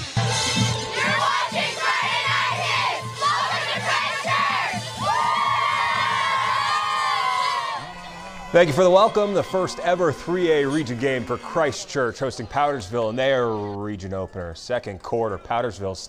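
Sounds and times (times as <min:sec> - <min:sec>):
music bed: 0:00.0 - 0:09.6
cheerleaders yelling a cheer: 0:00.8 - 0:13.8.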